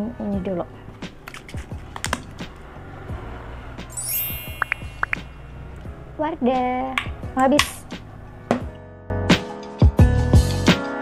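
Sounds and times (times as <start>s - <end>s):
soft background music: 0.0s - 11.0s
shimmering chime sound effect: 3.9s - 5.7s.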